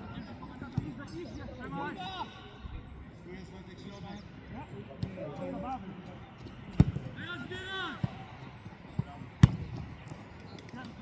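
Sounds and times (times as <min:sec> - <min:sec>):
voices around the pitch: 0:00.0 - 0:11.0
football kicked hard: 0:06.8 - 0:07.1, 0:09.0 - 0:09.9.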